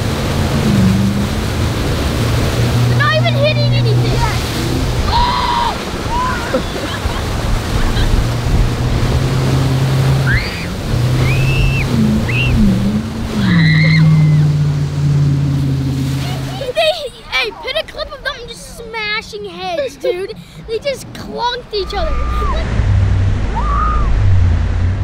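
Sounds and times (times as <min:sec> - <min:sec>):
boat engine droning: 0:00.0 - 0:25.0
rush of wake and spray: 0:00.0 - 0:25.0
people shouting and yelling: 0:05.0 - 0:06.8, 0:21.6 - 0:22.7.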